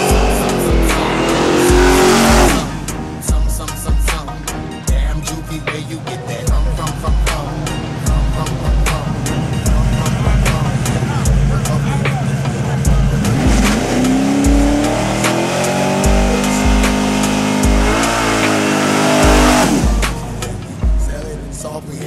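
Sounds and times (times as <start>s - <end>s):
car engine revving hard: 0.0s - 3.2s, 6.8s - 20.7s
hip-hop music with heavy bass: 0.0s - 22.0s.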